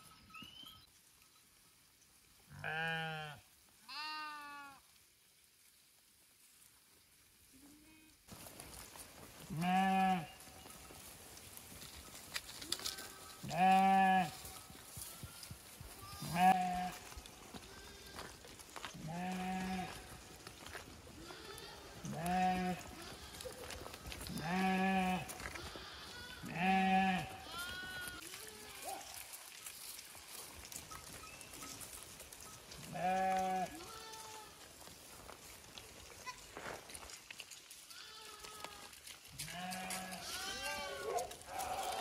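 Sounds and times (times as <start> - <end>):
sheep bleating: 2.5 - 4.8, 9.5 - 10.5, 12.7 - 20.2, 21.2 - 29.1, 32.8 - 34.6, 37.9 - 42.0.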